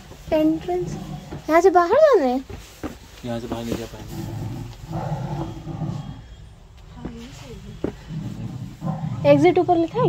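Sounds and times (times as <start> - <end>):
low bumping noises: 0.0 - 10.0.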